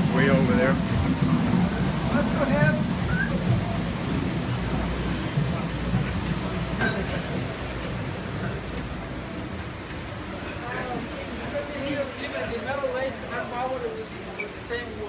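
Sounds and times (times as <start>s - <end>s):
people talking: 0.0s - 4.0s, 10.2s - 15.0s
water wheel rushing: 0.0s - 15.0s.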